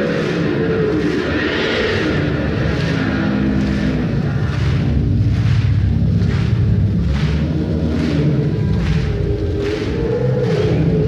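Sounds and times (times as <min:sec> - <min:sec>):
crowd noise: 0:00.0 - 0:11.0
distorted electric guitar: 0:00.0 - 0:11.0.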